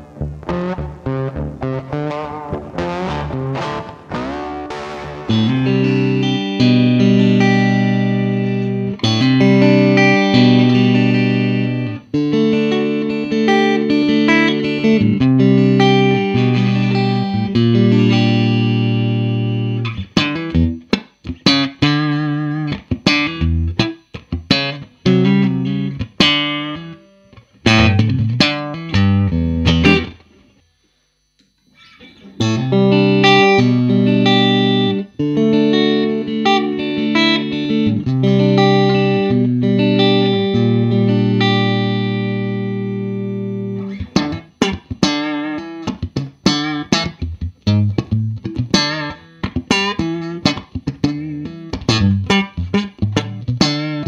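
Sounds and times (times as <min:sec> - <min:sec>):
electric guitar chords: 0:00.0 - 0:30.6, 0:31.4 - 0:54.0.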